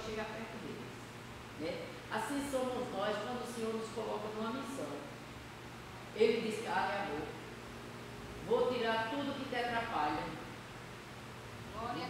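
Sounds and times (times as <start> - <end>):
woman speaking: 0.0 - 1.0, 1.6 - 5.2, 6.2 - 7.4, 8.4 - 10.5, 11.7 - 12.0.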